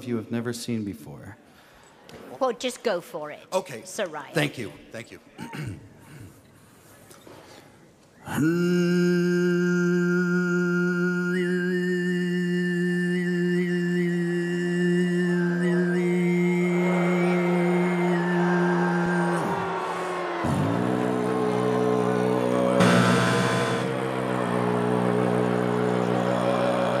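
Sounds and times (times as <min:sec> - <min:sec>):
throat singing drone: 0:20.5 - 0:27.0
noisy burst: 0:22.8 - 0:24.0.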